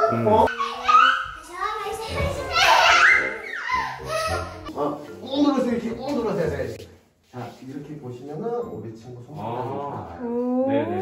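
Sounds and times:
toddlers squealing and babbling: 0:00.0 - 0:04.7.

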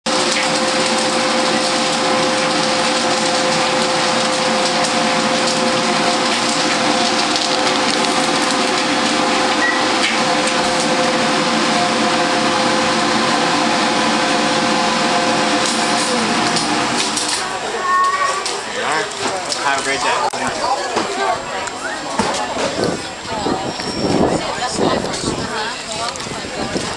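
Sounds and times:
exhaust hood rushing: 0:00.1 - 0:19.6
kettle corn popper humming: 0:00.1 - 0:21.0.

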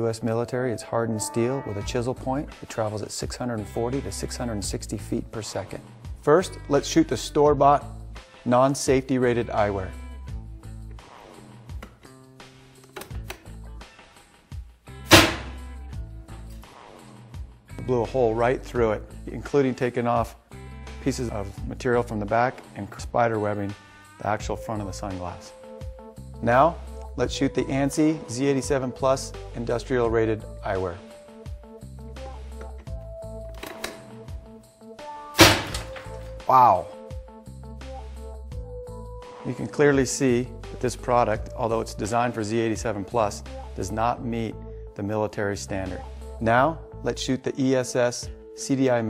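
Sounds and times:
background music: 0:00.0 - 0:49.0
impact gun firing crack: 0:15.1 - 0:15.6, 0:35.4 - 0:36.2
loud sharp gunshot: 0:15.1 - 0:15.6, 0:35.4 - 0:36.0.

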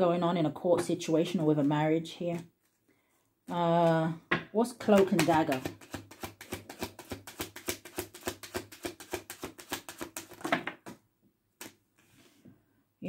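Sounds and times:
cards being shuffled: 0:04.8 - 0:10.6.

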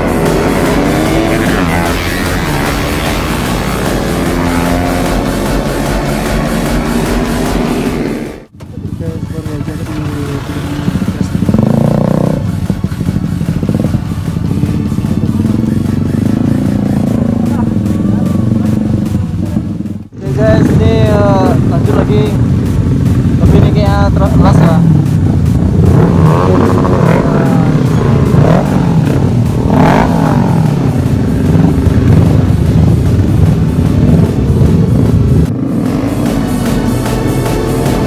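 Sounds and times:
people's voices: 0:00.0 - 0:31.8
background music: 0:00.0 - 0:38.0
motorcycle engines revving: 0:00.0 - 0:38.0.

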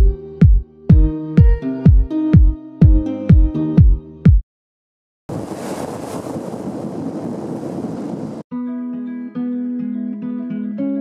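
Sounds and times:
wind buffeting microphone: 0:05.3 - 0:08.4.

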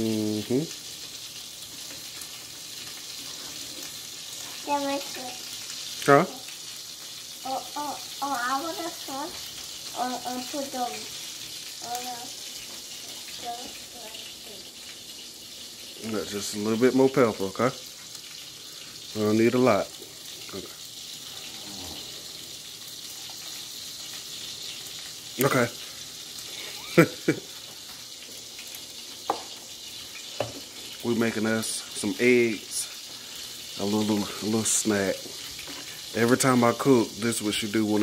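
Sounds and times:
faint steady hiss: 0:00.0 - 0:38.0
frying pan sizzling: 0:00.0 - 0:38.0.

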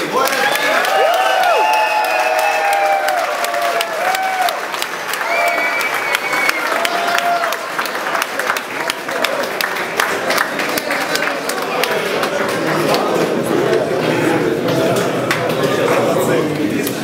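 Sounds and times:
people applauding: 0:00.0 - 0:17.0.

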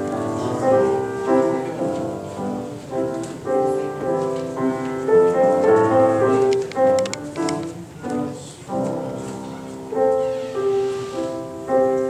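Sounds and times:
slow piano piece: 0:00.0 - 0:12.0.

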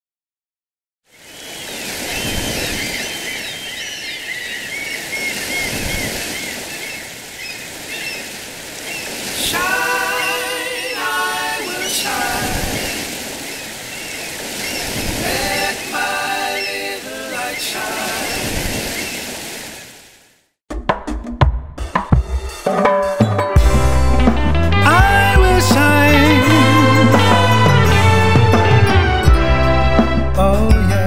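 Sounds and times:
rushing water: 0:01.1 - 0:20.5.

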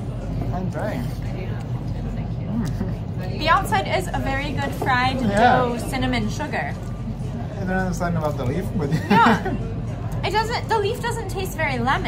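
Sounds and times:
faint diners' voices: 0:00.0 - 0:12.0
low room hum: 0:00.0 - 0:12.0.

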